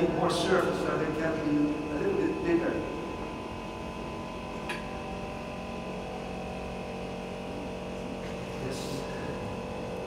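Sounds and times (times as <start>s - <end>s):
air compressor humming: 0.0s - 10.0s.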